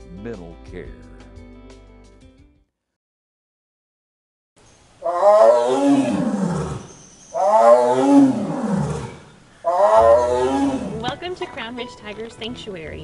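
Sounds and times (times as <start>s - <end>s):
big cat roaring: 5.0s - 11.1s.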